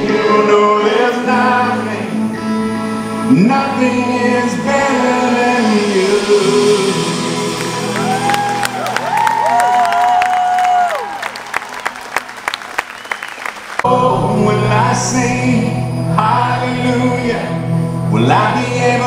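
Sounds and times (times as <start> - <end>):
person singing: 0.0 - 2.5, 3.2 - 9.5, 13.8 - 19.0
pop-rock band playing: 0.0 - 10.6
audience cheering and clapping: 7.5 - 13.9.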